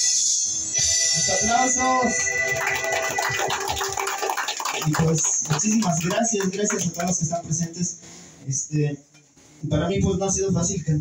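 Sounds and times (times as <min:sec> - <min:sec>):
people clapping and applauding: 0:02.2 - 0:07.8.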